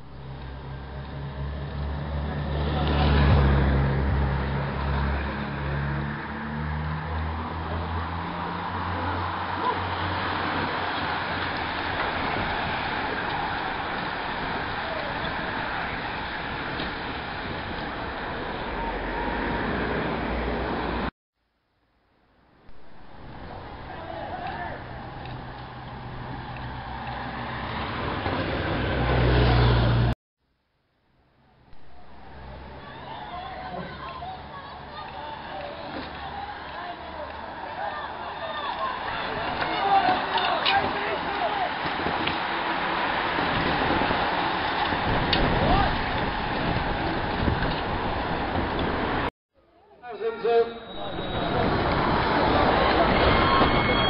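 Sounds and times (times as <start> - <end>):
racing bicycles rushing by: 0.1 - 21.1, 22.9 - 30.2, 31.9 - 49.3, 50.8 - 54.0.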